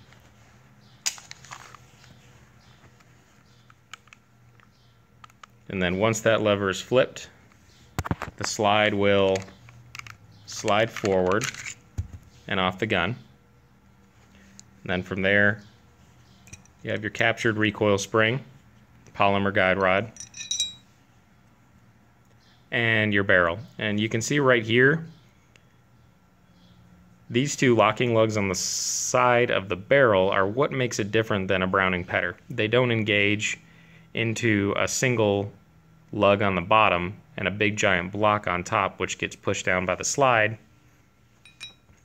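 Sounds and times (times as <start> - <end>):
handling rustles: 0.0 - 5.5, 20.2 - 20.9
light metallic clinks: 16.4 - 16.8, 20.1 - 20.9, 41.4 - 42.0.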